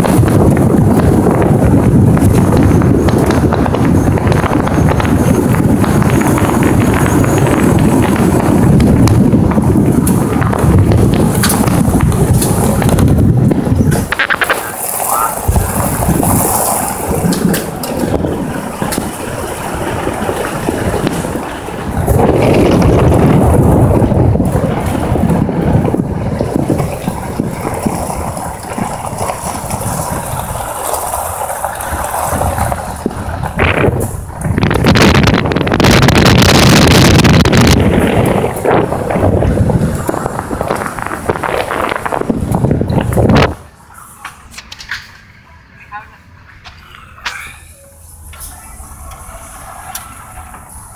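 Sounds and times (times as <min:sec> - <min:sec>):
wind buffeting microphone: 0:00.0 - 0:50.9.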